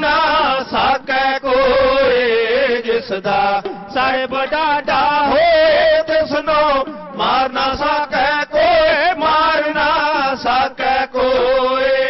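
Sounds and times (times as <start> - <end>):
men singing in chanting style: 0.0 - 12.0.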